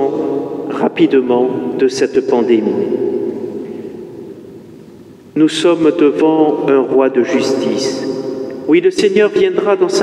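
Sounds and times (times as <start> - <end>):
echo of man's voice: 0.0 - 4.3, 5.3 - 10.0.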